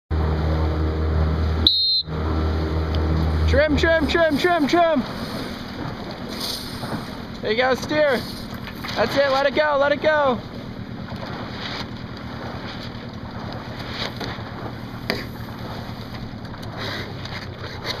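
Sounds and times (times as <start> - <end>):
motorboat engine hum: 0.1 - 18.0
wind and water noise: 0.1 - 18.0.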